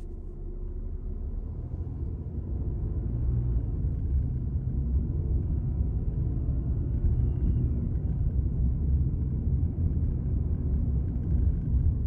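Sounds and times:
car tyres and engine rumble: 0:00.0 - 0:12.0.

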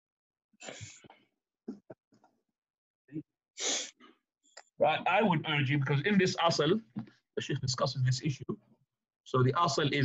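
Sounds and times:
hissy burst of breath: 0:03.6 - 0:03.9.

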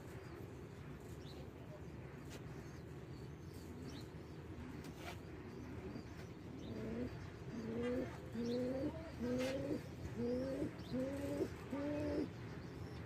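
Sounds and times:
pigeon cooing: 0:06.7 - 0:12.4.

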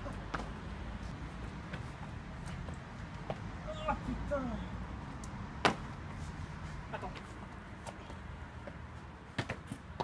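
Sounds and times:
low outdoor background noise: 0:00.0 - 0:10.0
footsteps on stone paving: 0:00.1 - 0:03.6.

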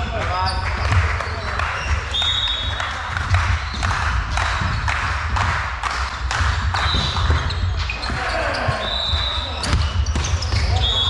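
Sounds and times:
shoes squeaking on floor: 0:00.0 - 0:05.2, 0:06.4 - 0:11.0
ball bouncing on wooden floor: 0:03.1 - 0:08.9, 0:09.6 - 0:11.0.

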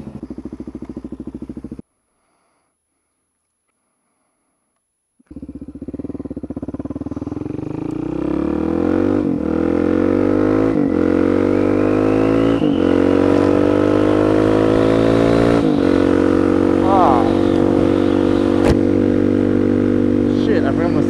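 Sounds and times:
motorcycle engine accelerating: 0:00.0 - 0:01.8, 0:05.2 - 0:21.0.

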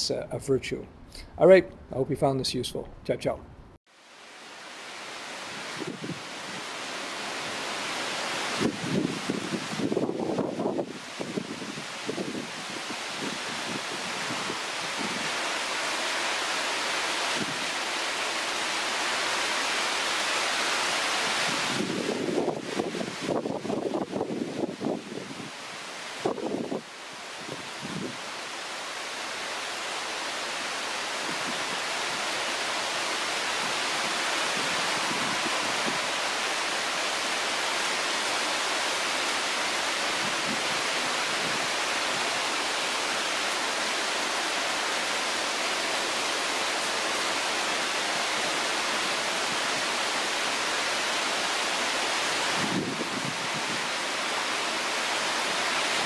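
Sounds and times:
heavy rain falling: 0:04.0 - 0:56.0.

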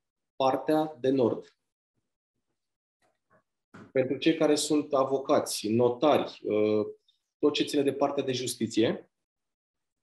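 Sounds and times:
man speaking: 0:00.4 - 0:01.6, 0:04.0 - 0:09.1.

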